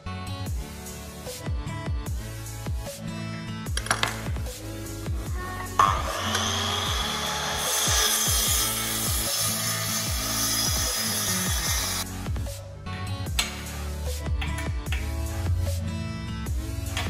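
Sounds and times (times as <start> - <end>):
mitre saw cutting metal: 5.8 - 12.0
electronic music with bass beat: 11.5 - 17.0.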